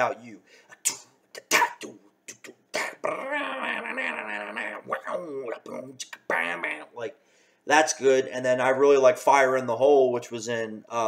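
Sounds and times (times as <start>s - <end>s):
man making percussive mouth sounds: 0.7s - 7.0s.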